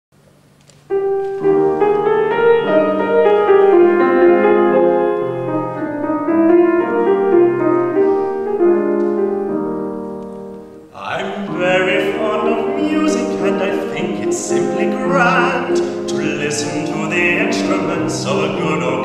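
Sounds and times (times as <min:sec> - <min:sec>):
grand piano playing: 0:00.9 - 0:19.0.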